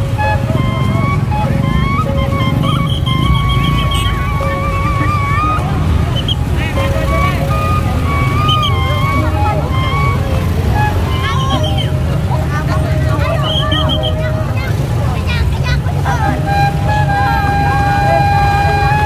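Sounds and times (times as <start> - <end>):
crowd voices and shouts: 0.0 - 19.0.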